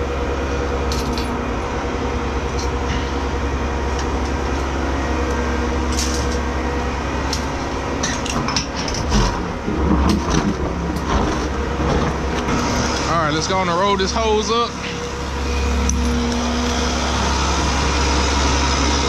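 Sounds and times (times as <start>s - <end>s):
truck engine and pump running: 0.0s - 19.0s.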